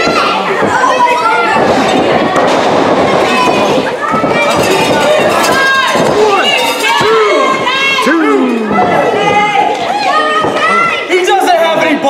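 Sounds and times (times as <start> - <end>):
crowd shouting in echoing hall: 0.0 - 12.0.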